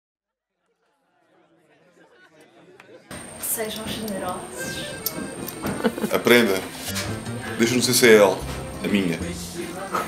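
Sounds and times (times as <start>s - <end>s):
chattering voices: 0.6s - 10.0s.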